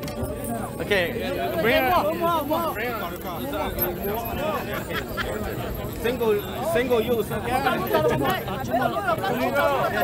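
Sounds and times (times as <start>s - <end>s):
large crowd chatter: 0.0s - 10.0s
people talking close by: 0.0s - 10.0s.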